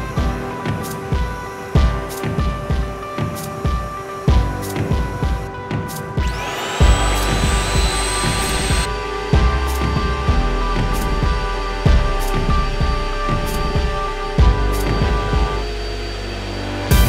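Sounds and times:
background music with steady beat: 0:00.0 - 0:17.0
vacuum pump whine: 0:06.2 - 0:17.0.

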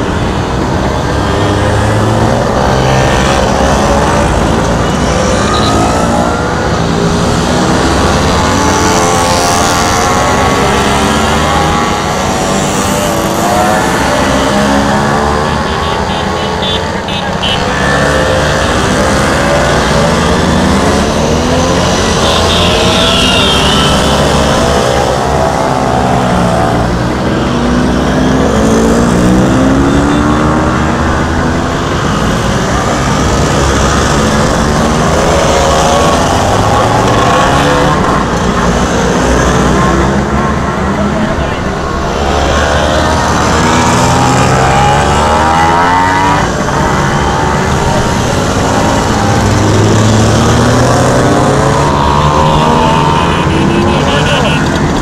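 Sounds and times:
scooter engines passing: 0:00.0 - 0:55.0.

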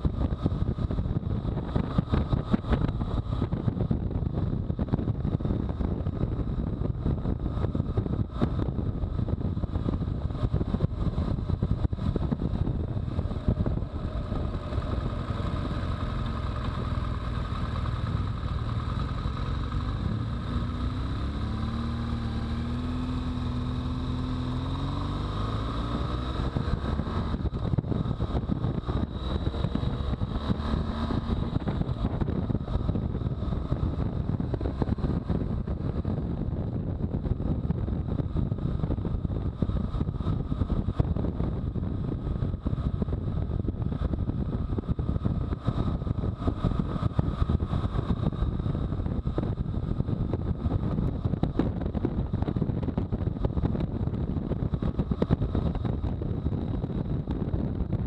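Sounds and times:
motorcycle engine running: 0:00.0 - 0:58.0
wind noise on microphone: 0:00.0 - 0:58.0.

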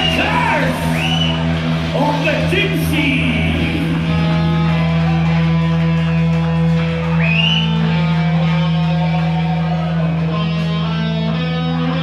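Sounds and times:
distorted electric guitars and bass: 0:00.0 - 0:12.0.

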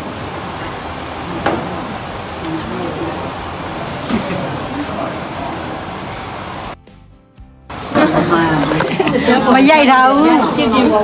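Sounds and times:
dense background noise: 0:00.0 - 0:06.9, 0:07.7 - 0:11.0.

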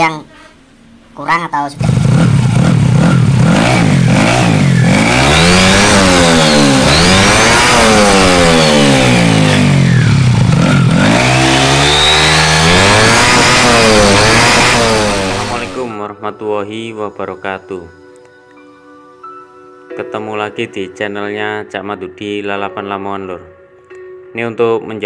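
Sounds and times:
drive belt and pulleys spinning: 0:01.8 - 0:15.9
scooter engine revving: 0:01.8 - 0:15.9.

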